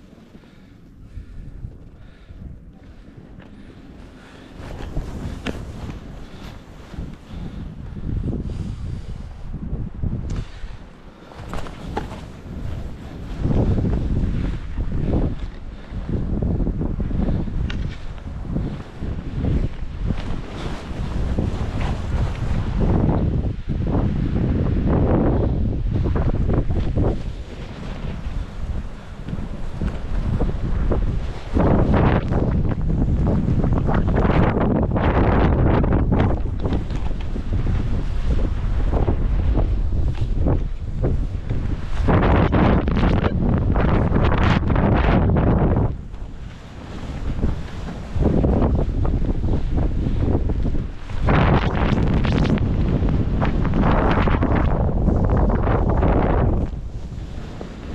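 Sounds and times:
wind buffeting microphone: 0.0s - 57.9s
skis scraping through snow: 2.0s - 9.6s, 10.3s - 23.2s, 23.9s - 57.9s.

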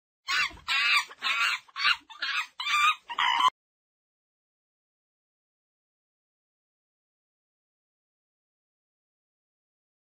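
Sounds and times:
shrill animal cries: 0.3s - 3.5s.

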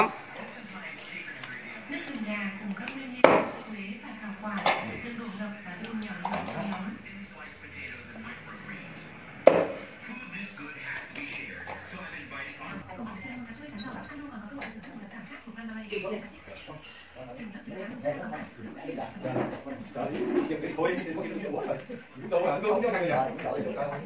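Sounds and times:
low background voices: 0.0s - 24.0s.

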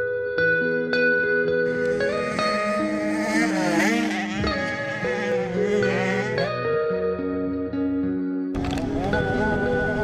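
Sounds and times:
background music with warbling lead: 0.6s - 8.4s.

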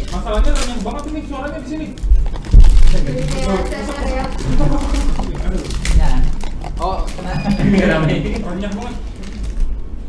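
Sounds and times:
men talking: 0.0s - 2.1s, 2.8s - 9.1s
men laughing: 4.4s - 5.5s, 7.2s - 8.4s.

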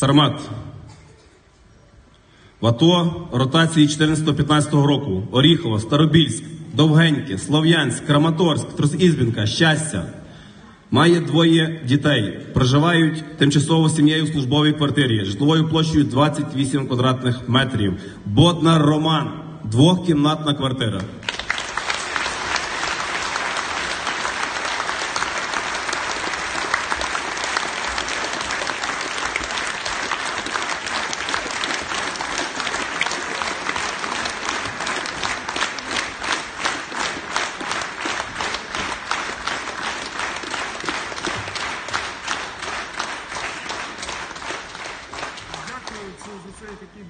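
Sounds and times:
audience applauding: 21.2s - 46.8s.

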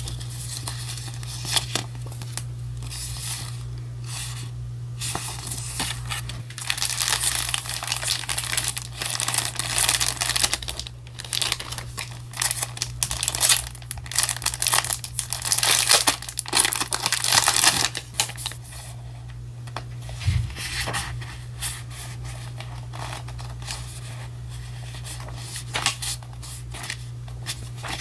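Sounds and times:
paper crinkling and rustling: 0.0s - 28.0s
steady low hum: 0.0s - 28.0s.

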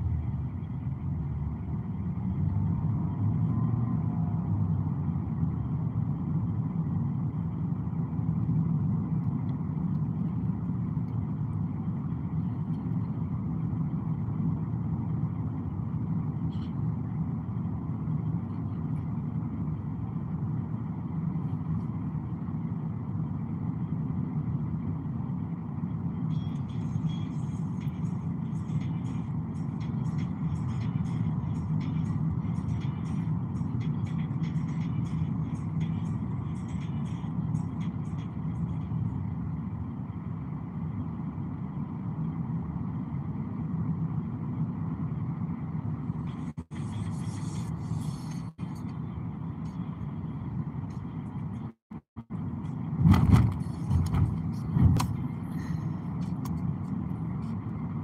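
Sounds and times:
road and engine noise in car: 0.0s - 58.0s.

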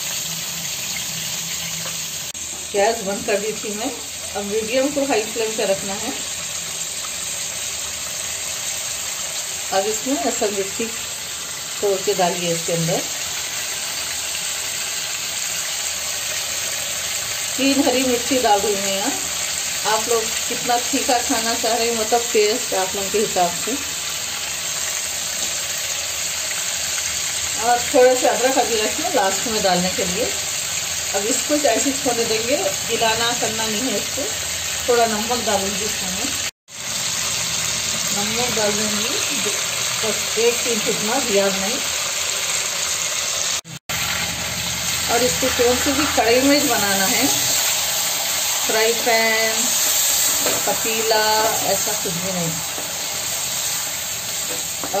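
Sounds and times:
chicken sizzling in hot oil: 0.0s - 55.0s.

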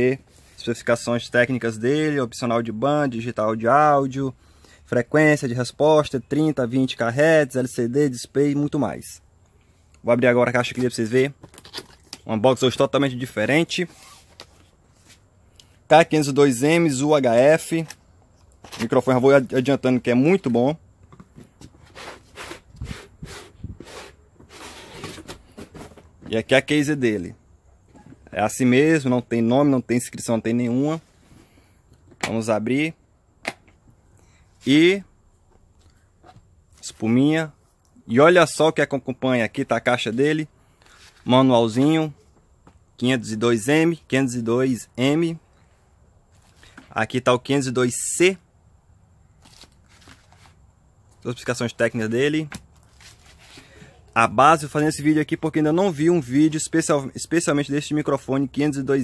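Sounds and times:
paper pages rustling: 13.7s - 15.3s, 18.6s - 19.1s, 49.4s - 50.6s, 52.8s - 53.7s
plastic case scraping cardboard: 21.6s - 26.3s.

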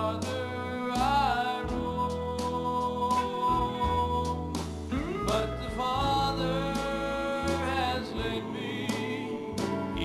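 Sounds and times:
gospel band playing: 0.0s - 10.0s
keyboard: 0.0s - 10.0s.

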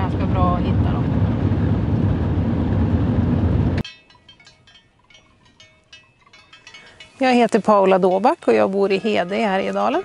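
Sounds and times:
road noise inside moving car: 0.0s - 3.8s
faint clinks: 3.8s - 10.0s.

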